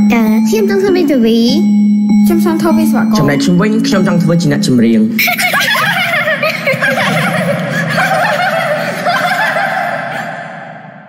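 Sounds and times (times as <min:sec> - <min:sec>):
children laughing and chattering: 0:05.2 - 0:10.9.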